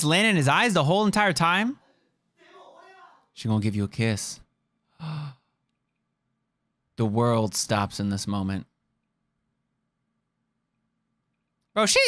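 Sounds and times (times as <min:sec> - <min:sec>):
breathy sigh with hum: 0:04.9 - 0:05.6.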